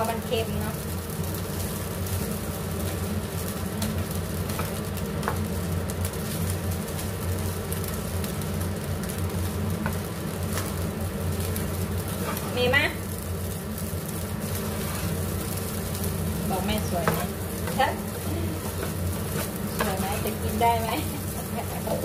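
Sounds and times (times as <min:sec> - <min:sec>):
rice sizzling in a frying pan: 0:00.0 - 0:22.0
steady low hum: 0:00.0 - 0:22.0
spatula scraping a pan: 0:12.0 - 0:12.5, 0:14.4 - 0:15.5, 0:17.0 - 0:20.4.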